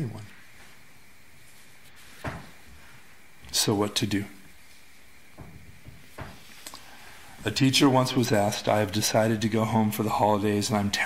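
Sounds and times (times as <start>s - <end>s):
steady room hiss: 0.0s - 11.0s.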